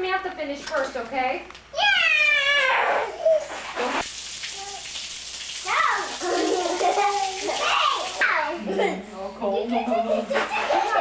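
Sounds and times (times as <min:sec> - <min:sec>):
young children's voices: 0:01.7 - 0:03.5, 0:05.6 - 0:09.1
hose water splashing on concrete: 0:02.5 - 0:08.5.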